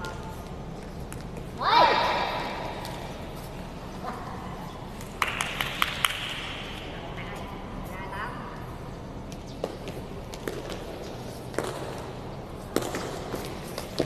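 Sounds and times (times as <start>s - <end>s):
foot kicking shuttlecock: 9.4s - 14.0s.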